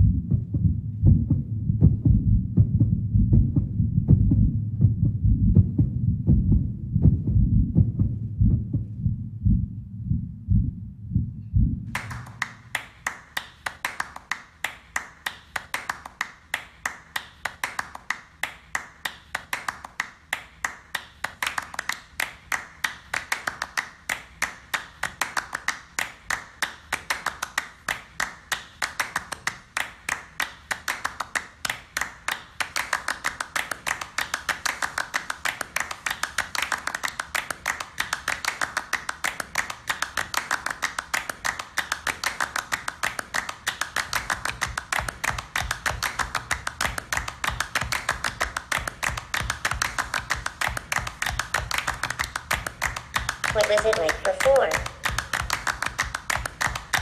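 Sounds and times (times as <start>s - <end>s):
deep repeating low pulse: 0.0s - 12.7s.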